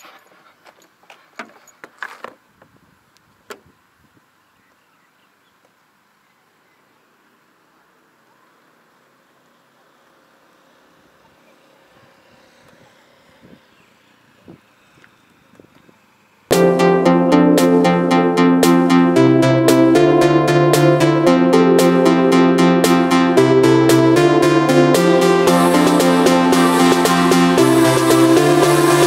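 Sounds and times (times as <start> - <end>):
handling clicks and knocks: 0.0 - 2.5
outdoor hiss: 2.3 - 16.5, 25.2 - 29.0.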